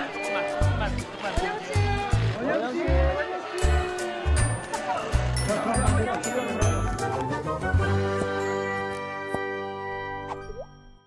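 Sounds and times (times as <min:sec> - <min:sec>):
cartoon-like pitch slide plop: 0:10.3 - 0:10.7.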